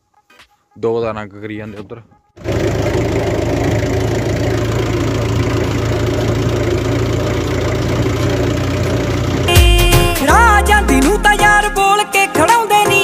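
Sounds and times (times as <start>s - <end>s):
tractor engine running: 2.4s - 11.6s.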